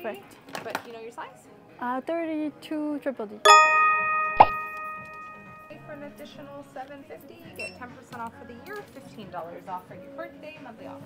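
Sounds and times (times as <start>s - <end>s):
bell-like ding: 3.5s - 6.4s
sharp tone falling in pitch: 3.5s - 6.4s.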